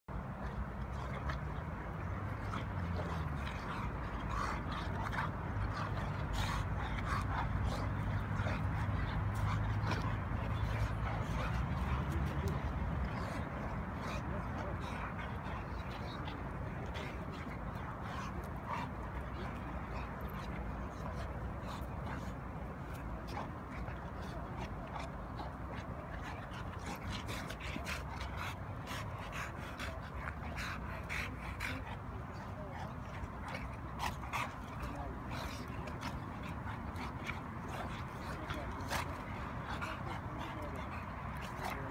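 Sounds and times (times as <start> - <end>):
dogs huffing breaths: 0.1 - 41.9.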